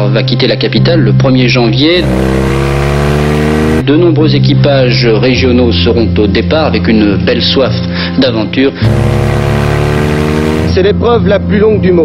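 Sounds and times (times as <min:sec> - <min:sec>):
vehicle engine accelerating: 0:01.8 - 0:03.9, 0:08.8 - 0:10.8.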